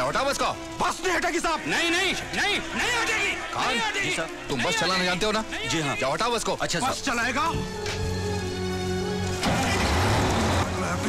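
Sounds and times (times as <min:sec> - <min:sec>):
dramatic background music: 0:00.0 - 0:11.0
bus engine revving: 0:09.4 - 0:11.0.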